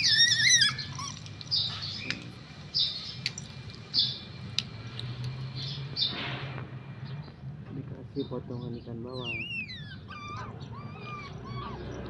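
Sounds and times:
otter squealing and chirping: 0.0s - 3.2s, 9.1s - 12.0s.

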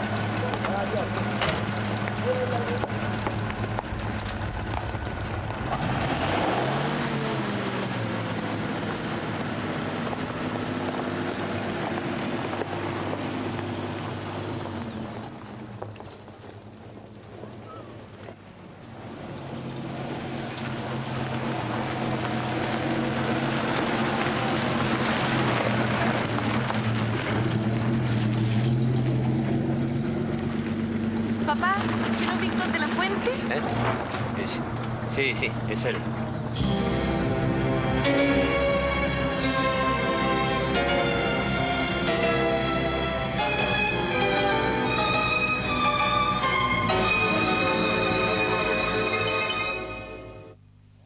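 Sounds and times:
vintage car engine running: 0.0s - 49.2s.

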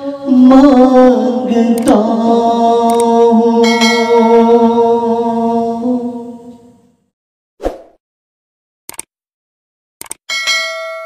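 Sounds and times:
bright bell ding: 10.3s - 11.0s.

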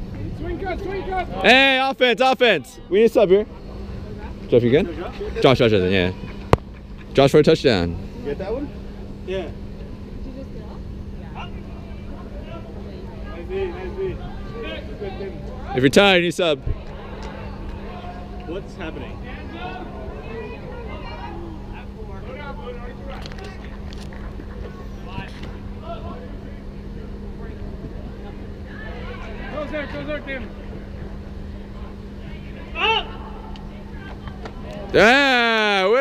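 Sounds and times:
blower fans rumbling: 0.0s - 36.0s
distant shouts: 32.2s - 36.0s.

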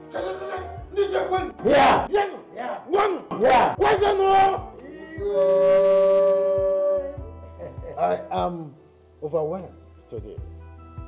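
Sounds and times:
voices shouting a chant: 0.1s - 7.3s.

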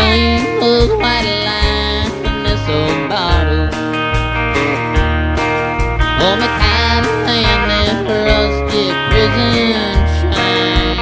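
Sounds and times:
country band playing: 0.0s - 11.0s
plucked guitar: 0.0s - 11.0s.

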